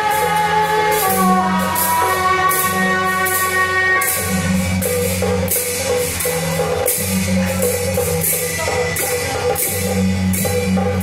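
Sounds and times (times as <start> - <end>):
cymbals clashing: 0.0 - 11.0
drum: 0.0 - 11.0
gong: 0.0 - 11.0
shawms playing reedy melody: 0.0 - 11.0.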